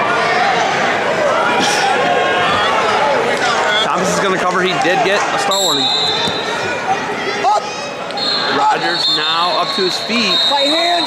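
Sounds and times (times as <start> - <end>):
people shouting in a hall: 5.7 - 11.0.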